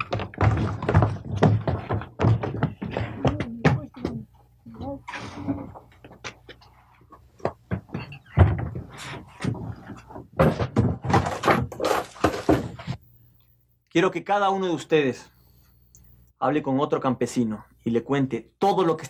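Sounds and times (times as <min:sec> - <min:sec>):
sharp knocks and taps: 0:00.0 - 0:04.2
people talking: 0:03.1 - 0:05.8, 0:13.9 - 0:15.3, 0:16.4 - 0:19.0.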